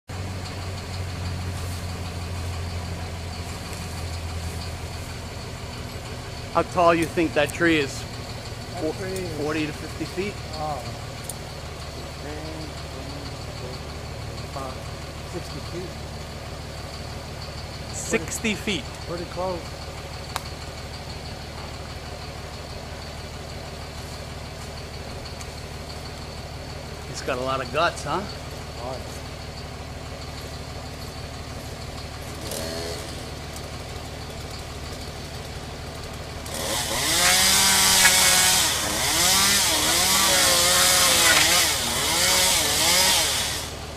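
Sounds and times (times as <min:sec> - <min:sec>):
engine idling: 0:00.0 - 0:43.9.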